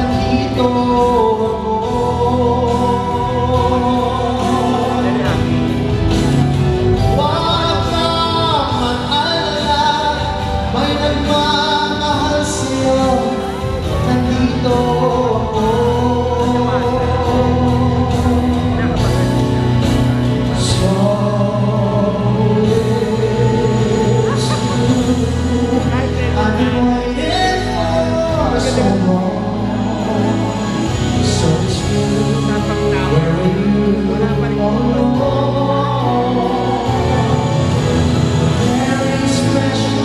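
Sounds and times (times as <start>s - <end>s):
man singing into microphone: 0.0s - 40.0s
musical accompaniment: 0.0s - 40.0s.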